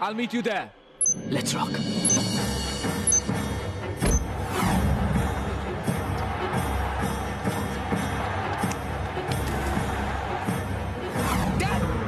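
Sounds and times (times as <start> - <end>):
tense action film score: 0.0 - 12.0
short high electronic beeps: 1.0 - 1.3, 2.0 - 2.2, 3.1 - 3.3.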